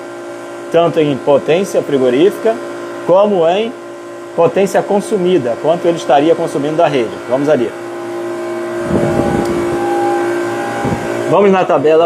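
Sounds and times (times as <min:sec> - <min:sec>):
machine humming: 0:00.0 - 0:12.0
microphone handling rumble: 0:08.7 - 0:11.3.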